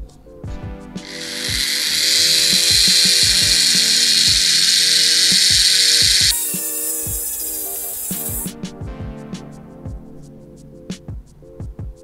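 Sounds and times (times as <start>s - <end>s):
background music with steady beat: 0.0s - 12.0s
rotary tool grinding plastic: 1.1s - 8.5s.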